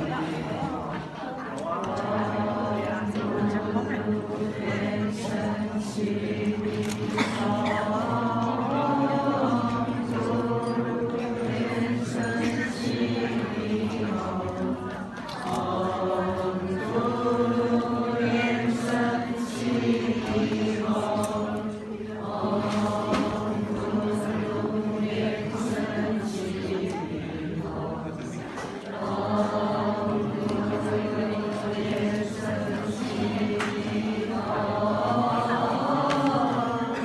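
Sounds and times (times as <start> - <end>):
many voices chanting: 0.0 - 37.0.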